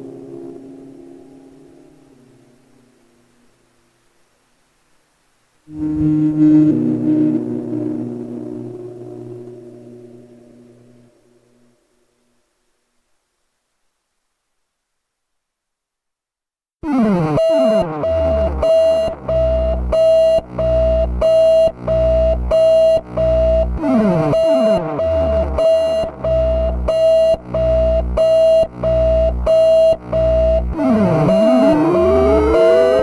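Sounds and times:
pitch sweeps: 5.7 - 10.0, 30.8 - 33.0
held oscillator tone: 5.7 - 11.1, 16.9 - 33.0
repeating electronic pulse: 22.2 - 33.0.

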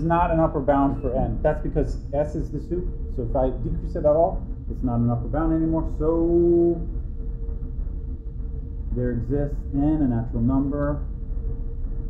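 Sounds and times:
faint constant hum: 0.0 - 12.0
low background rumble: 0.0 - 12.0.

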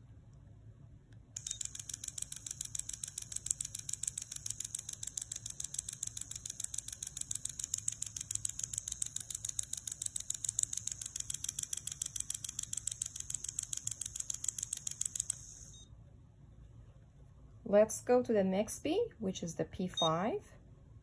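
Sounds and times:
dental motor pulsing whine: 1.4 - 15.9.

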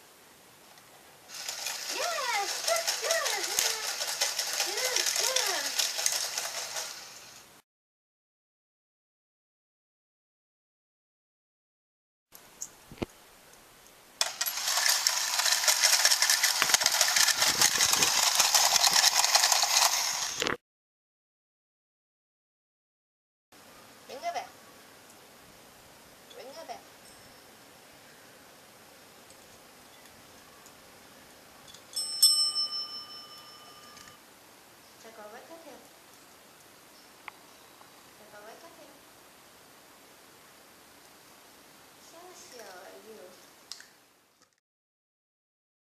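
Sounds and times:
toy motor and gears whirring: 1.3 - 7.4, 14.2 - 20.6
desk service bell ringing: 32.0 - 34.2.

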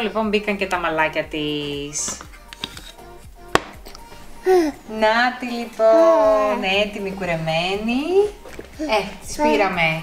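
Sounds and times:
sharp wooden box clack: 3.5 - 3.8.

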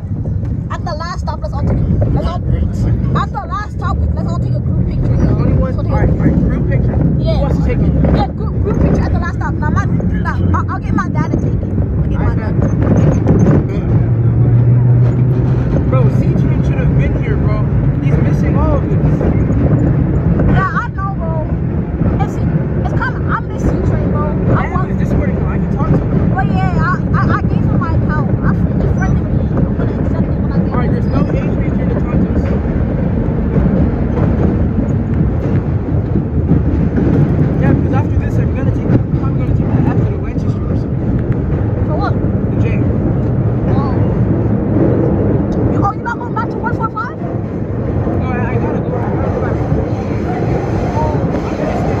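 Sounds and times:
subway train rumbling in tunnel: 0.0 - 52.0.

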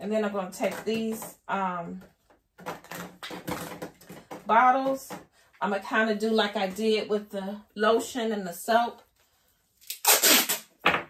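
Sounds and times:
tape tearing: 9.8 - 10.9
tape pulled off roll screeching: 9.9 - 10.7.

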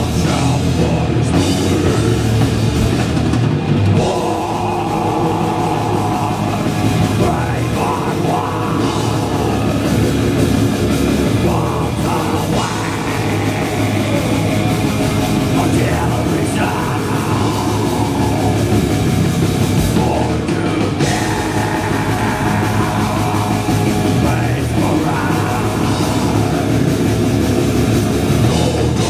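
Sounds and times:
bass guitar: 0.0 - 29.0
drum kit: 0.0 - 29.0
electric guitar: 0.0 - 29.0
heavy metal band playing: 0.0 - 29.0.

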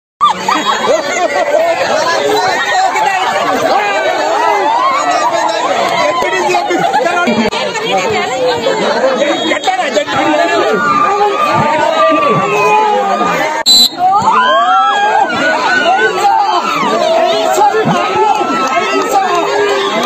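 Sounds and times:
crowd chattering: 0.2 - 20.0.

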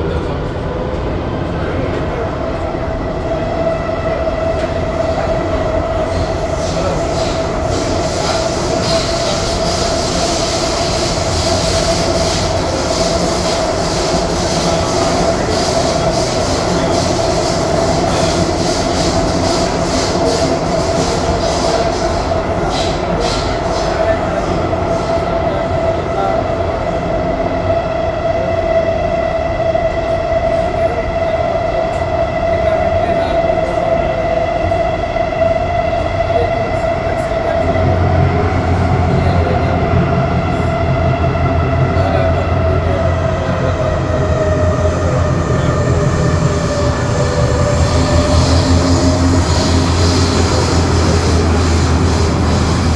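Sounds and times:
train wheels rumbling: 0.0 - 52.9.

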